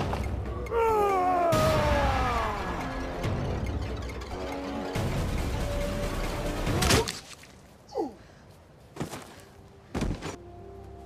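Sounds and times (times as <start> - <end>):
dramatic film music: 0.0 - 7.1.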